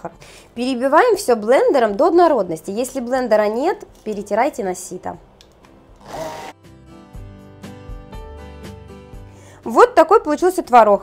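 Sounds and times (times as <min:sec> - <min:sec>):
soft background music with beat: 0:05.3 - 0:09.5
immersion blender whirring: 0:06.0 - 0:06.6.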